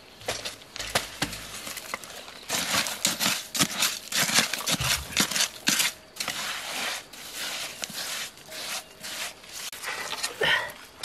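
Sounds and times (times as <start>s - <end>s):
hands scraping loose soil: 0.2s - 11.0s.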